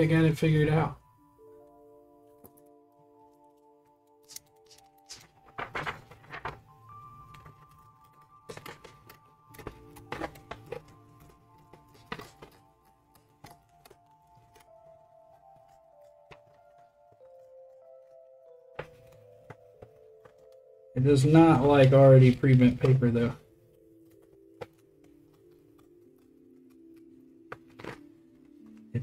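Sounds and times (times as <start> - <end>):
soft background music: 0.0 - 29.0
paper rustling: 4.1 - 29.0
scissors cutting paper: 4.2 - 6.6, 7.4 - 14.9.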